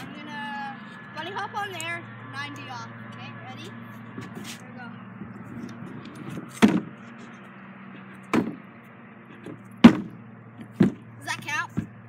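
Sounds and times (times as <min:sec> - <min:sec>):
scooter wheels knocking on wood: 0:09.4 - 0:12.0.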